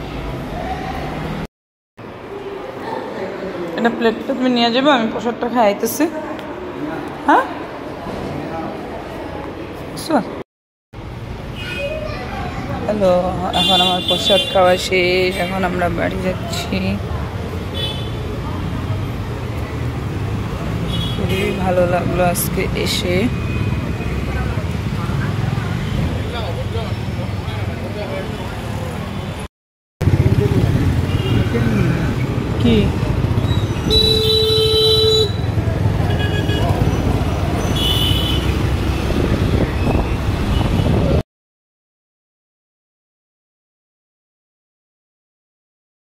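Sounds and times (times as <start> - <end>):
cars and scooters passing: 0.0 - 10.2, 11.0 - 41.2
road traffic rumble: 0.0 - 10.4, 11.0 - 41.2
vehicle horn blasts: 33.8 - 35.5, 37.8 - 38.5.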